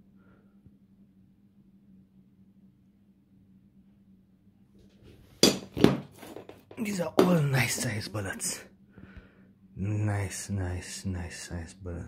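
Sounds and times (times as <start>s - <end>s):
faint hum: 0.0s - 5.8s, 6.4s - 12.0s.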